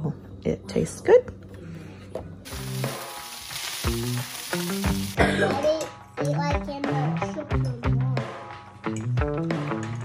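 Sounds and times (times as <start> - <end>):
rice sizzling in a skillet: 2.5 - 5.2
background music with a beat: 5.2 - 10.0.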